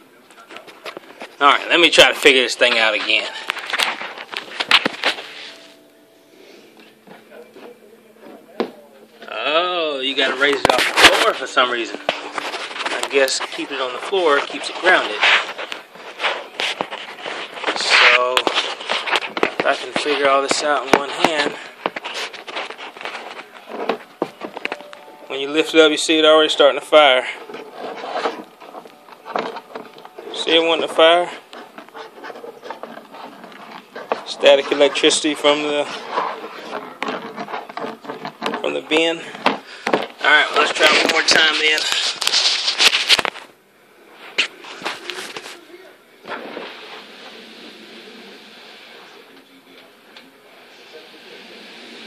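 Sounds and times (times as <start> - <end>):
faint rustling: 10.1 - 50.3
plastic bin scraping on carpet: 27.4 - 39.6, 46.2 - 48.4.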